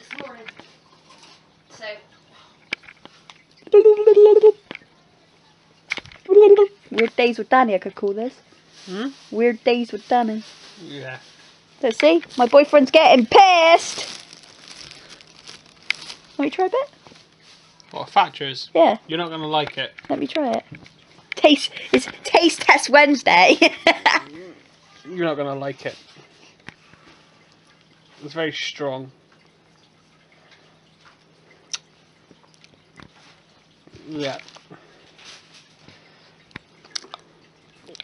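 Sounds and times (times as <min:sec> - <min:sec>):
plastic bag rustling: 0:08.6 - 0:18.0, 0:34.1 - 0:36.2
sipping and swallowing drink: 0:36.8 - 0:38.0.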